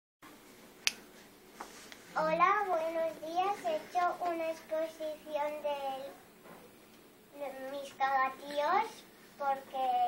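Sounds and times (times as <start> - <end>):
faint room hiss: 0.2 - 10.0.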